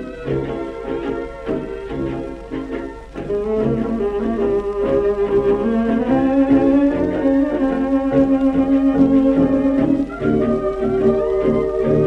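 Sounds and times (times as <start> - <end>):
orchestra playing tango: 0.0 - 12.0.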